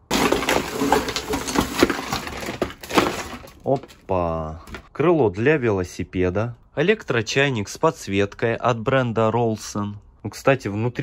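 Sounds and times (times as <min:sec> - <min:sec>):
plastic bag rustling: 0:00.0 - 0:04.1
small objects clattering on wood: 0:00.0 - 0:04.9.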